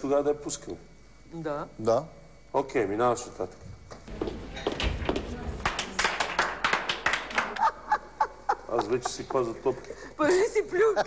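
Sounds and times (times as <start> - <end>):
hands clapping quickly: 4.2 - 7.8
bursts of laughter: 7.4 - 10.9.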